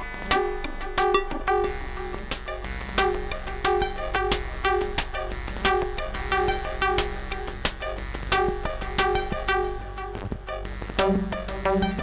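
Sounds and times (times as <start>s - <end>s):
synthesizer sequenced notes: 0.0s - 12.0s.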